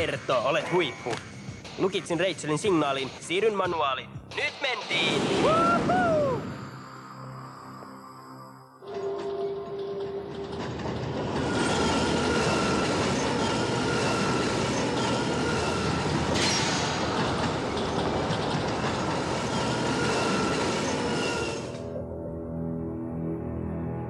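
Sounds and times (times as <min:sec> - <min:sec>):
high whine: 0:00.0 - 0:18.0
subway train rumbling in tunnel: 0:08.8 - 0:22.4.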